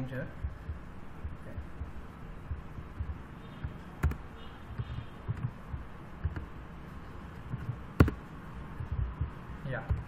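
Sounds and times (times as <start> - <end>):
keyboard keys thumping: 0.0 - 6.7, 7.3 - 10.0.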